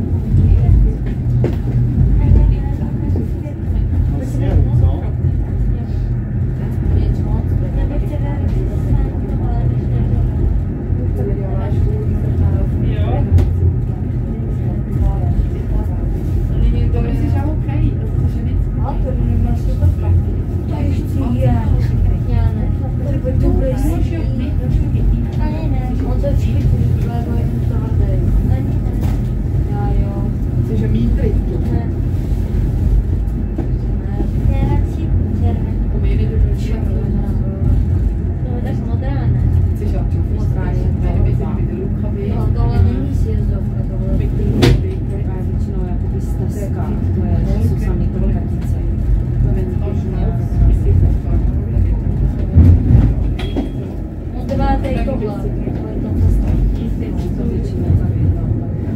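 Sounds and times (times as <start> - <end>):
funicular car rumbling on rails: 0.0 - 58.9
people's voices: 0.0 - 58.9.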